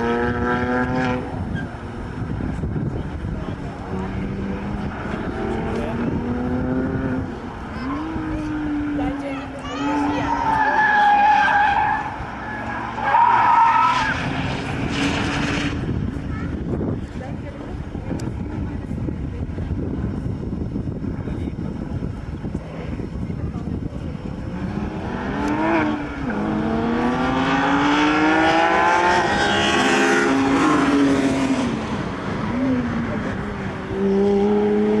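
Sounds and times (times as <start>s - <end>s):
sports car engines revving: 0.0s - 35.0s.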